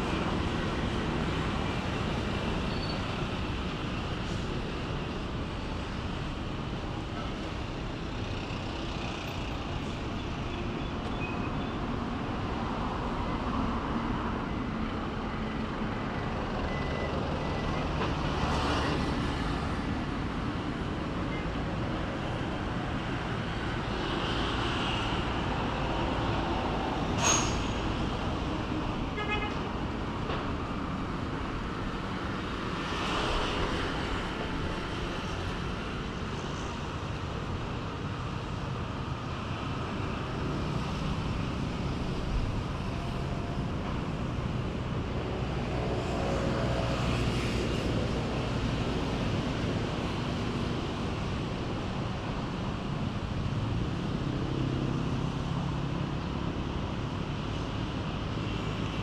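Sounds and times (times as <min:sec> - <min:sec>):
road traffic: 0:00.0 - 0:59.0.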